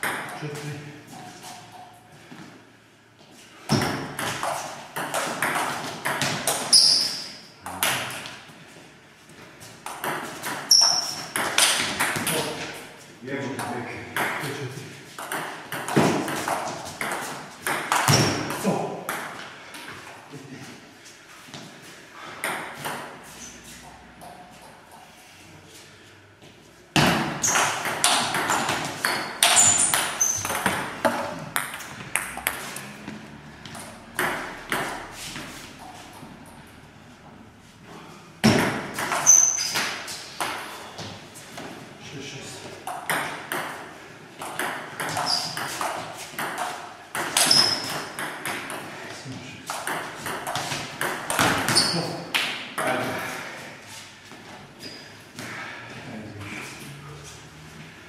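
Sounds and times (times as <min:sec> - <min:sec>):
table tennis balls clicking: 0:27.4 - 0:33.0, 0:38.4 - 0:40.7, 0:42.9 - 0:48.9.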